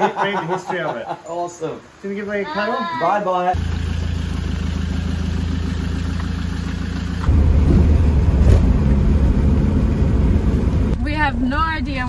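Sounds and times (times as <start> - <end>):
road noise: 0.0 - 12.0
truck engine running: 3.6 - 12.0.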